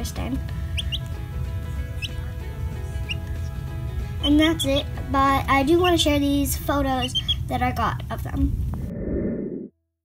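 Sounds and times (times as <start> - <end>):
background music with held tones: 0.0 - 8.2
chick peeping: 0.7 - 1.2, 2.0 - 2.2, 3.0 - 3.6, 7.0 - 7.5.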